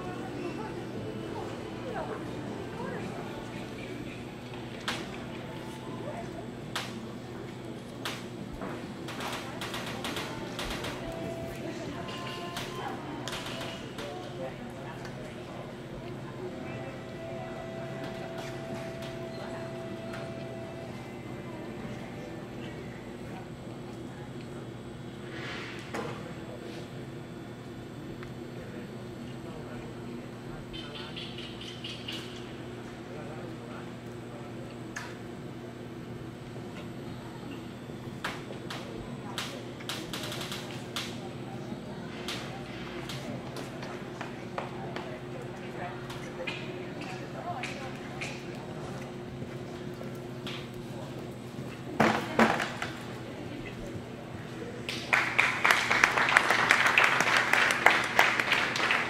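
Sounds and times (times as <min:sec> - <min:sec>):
faint background voices: 0:00.0 - 0:56.8
steady low hum: 0:00.0 - 0:59.0.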